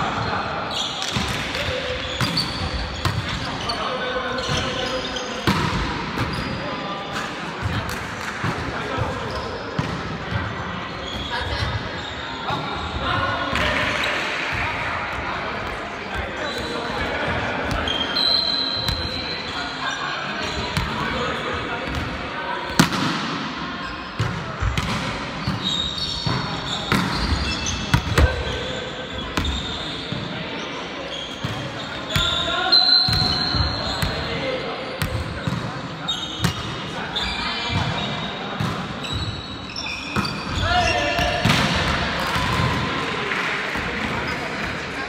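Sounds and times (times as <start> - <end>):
sneakers squeaking on floor: 0.2 - 7.8, 8.5 - 14.2, 15.6 - 22.0, 23.8 - 42.8.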